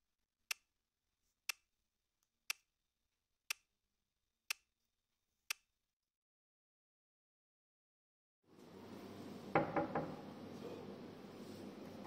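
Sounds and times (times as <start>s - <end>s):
watch ticking: 0.5s - 0.7s, 1.4s - 1.7s, 2.5s - 2.7s, 3.5s - 3.7s, 4.5s - 4.7s.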